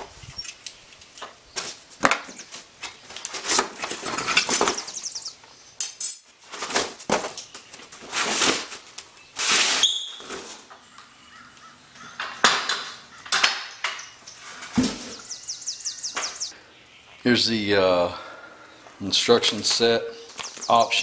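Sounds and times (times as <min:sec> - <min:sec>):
cardboard scraping and rustling: 0:01.6 - 0:04.8, 0:06.4 - 0:10.7, 0:14.4 - 0:15.2
bird chirping: 0:04.3 - 0:05.9, 0:13.0 - 0:17.6, 0:20.0 - 0:21.0.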